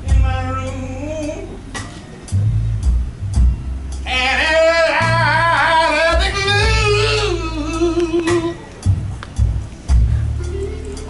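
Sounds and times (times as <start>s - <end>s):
bass: 0.0s - 11.0s
live blues band: 0.0s - 11.0s.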